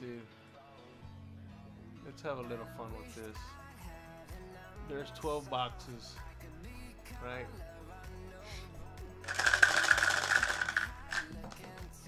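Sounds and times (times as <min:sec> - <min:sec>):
dice rattling in a shaker cup: 0:09.2 - 0:12.0.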